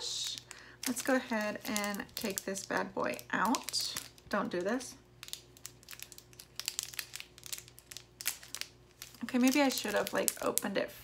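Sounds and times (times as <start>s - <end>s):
plastic packaging crinkling: 0.0s - 10.8s.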